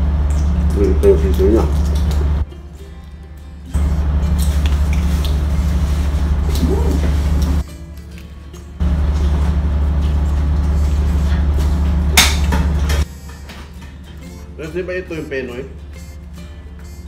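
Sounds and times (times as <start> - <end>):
ship machinery droning: 3.7 - 7.6, 8.8 - 17.0.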